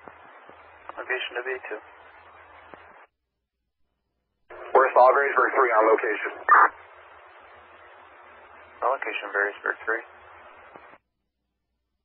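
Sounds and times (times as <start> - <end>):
radio transmission hiss: 0.0 - 3.1, 4.5 - 11.0
voice speaking over radio: 4.7 - 6.8.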